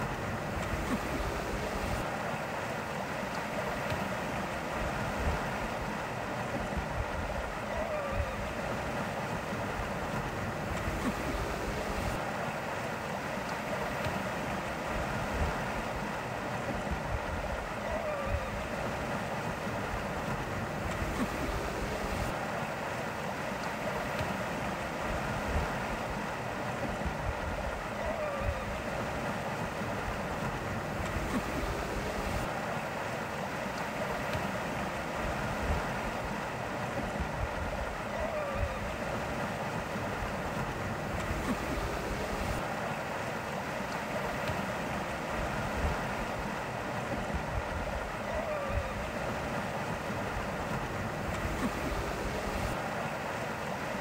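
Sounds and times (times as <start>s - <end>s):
water rushing: 0.0s - 54.0s
wind: 0.0s - 54.0s.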